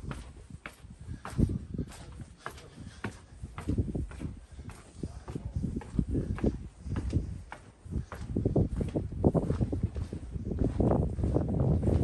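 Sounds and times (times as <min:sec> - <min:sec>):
boot footsteps on stone: 0:00.0 - 0:12.0.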